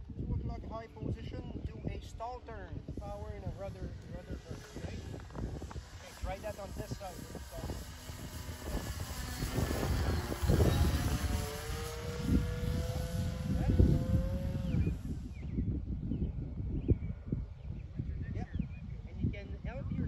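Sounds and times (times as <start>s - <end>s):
wind buffeting microphone: 0.0s - 20.0s
model airplane motor whining: 2.8s - 15.6s.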